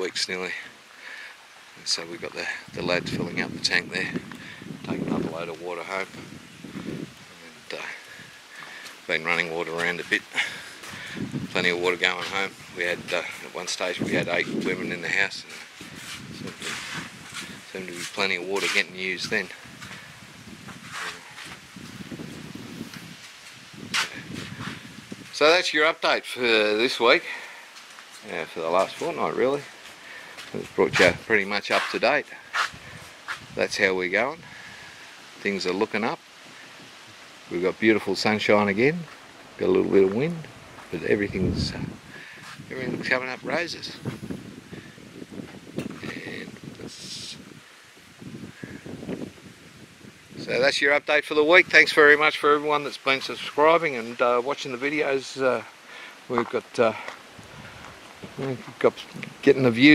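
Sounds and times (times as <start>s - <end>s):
wind noise on microphone: 1.8s - 26.2s, 30.4s - 35.9s, 36.6s - 54.3s, 56.4s - 59.9s
hissing rustle: 3.4s - 50.8s, 51.5s - 59.9s.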